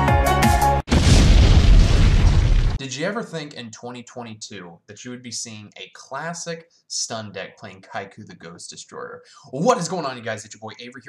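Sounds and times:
explosion boom with rumbling tail: 0:00.9 - 0:02.8
person talking: 0:02.8 - 0:11.0.

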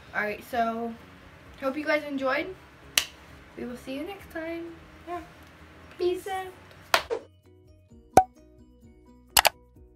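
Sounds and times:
quiet music: 0:00.0 - 0:09.9.

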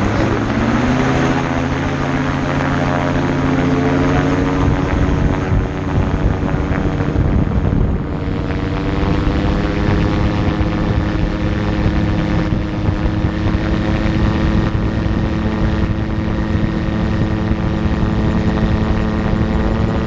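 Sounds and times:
aircraft engine and propeller: 0:00.0 - 0:20.0.

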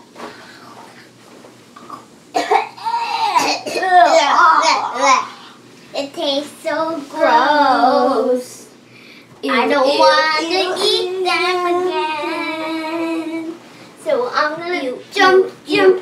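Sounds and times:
girl singing wordlessly: 0:06.0 - 0:08.7, 0:09.4 - 0:16.0.

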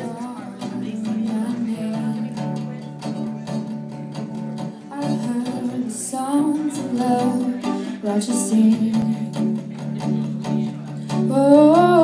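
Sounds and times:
woman singing: 0:00.0 - 0:02.8, 0:04.8 - 0:09.8, 0:11.1 - 0:12.0
acoustic guitar strumming: 0:00.0 - 0:12.0.

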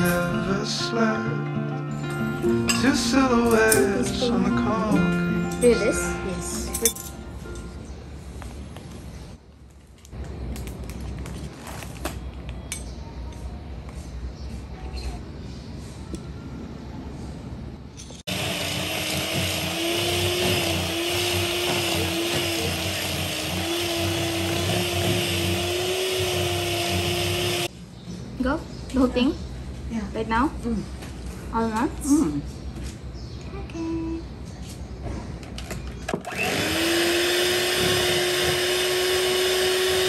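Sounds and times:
utensils clinking: 0:02.1 - 0:07.8
electric hand mixer running: 0:18.3 - 0:27.7, 0:36.3 - 0:40.0.

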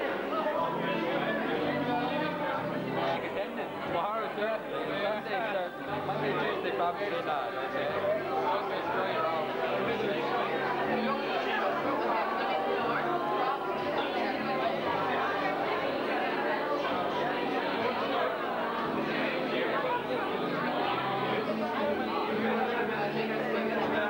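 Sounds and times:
chatter of many people: 0:00.0 - 0:24.0.

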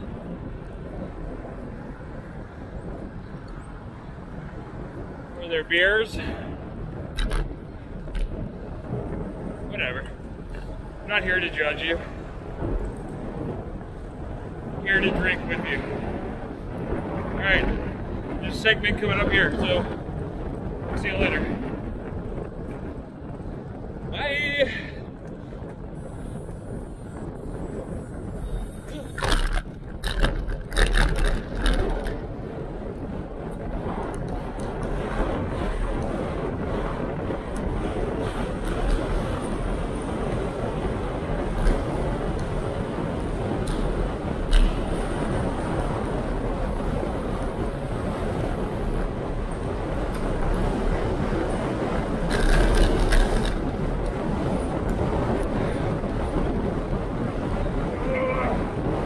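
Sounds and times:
bicycle road noise: 0:00.0 - 0:59.0
wind rush over microphone: 0:00.0 - 0:59.0
knocks and rattles: 0:29.2 - 0:32.2.

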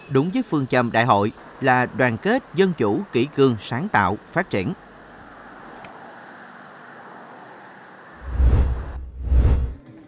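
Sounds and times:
road traffic noise: 0:00.0 - 0:09.8
deep whoosh sting: 0:08.2 - 0:09.8.

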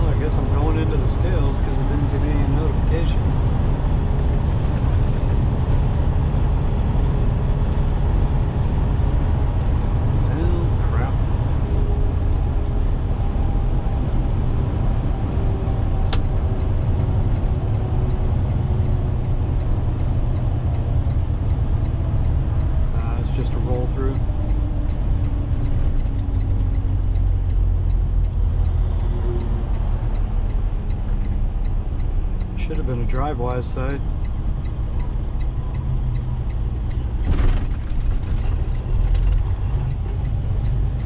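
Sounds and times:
road rumble: 0:00.0 - 0:41.0
truck engine drone: 0:00.0 - 0:41.0.

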